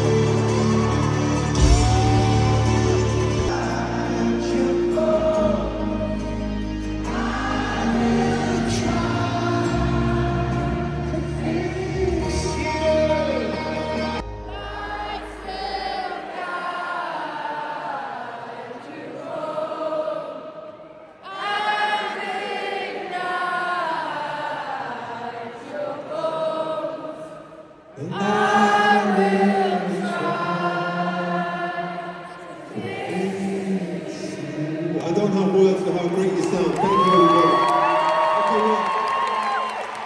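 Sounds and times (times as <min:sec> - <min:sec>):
stadium crowd singing: 0:00.0 - 0:40.0.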